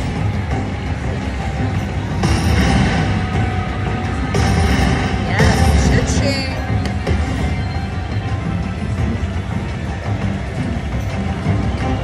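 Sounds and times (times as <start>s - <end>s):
dense background noise: 0.0s - 12.0s.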